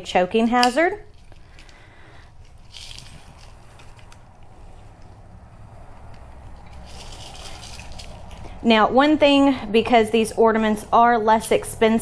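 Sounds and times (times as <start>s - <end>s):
steady low hum: 0.0s - 12.0s
cardboard tag rustling: 1.1s - 5.2s, 6.0s - 8.6s.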